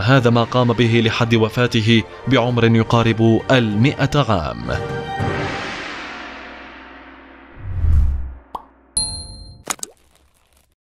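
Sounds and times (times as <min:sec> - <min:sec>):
deep low boom: 0:07.6 - 0:08.4
bright ding: 0:09.0 - 0:09.6.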